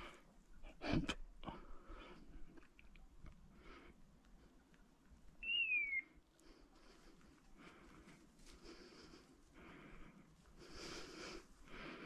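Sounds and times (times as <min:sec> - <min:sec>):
faint background noise: 0:00.0 - 0:12.0
whistled bird call: 0:05.4 - 0:06.2.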